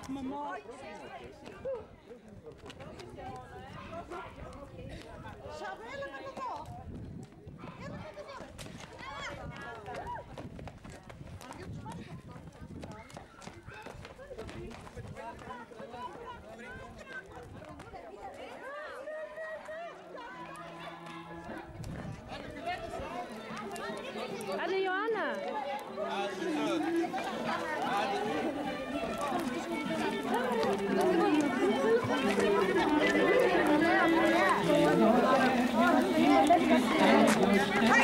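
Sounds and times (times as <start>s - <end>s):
crowd talking and calling out: 0.0s - 38.0s
running footsteps on asphalt: 0.0s - 38.0s.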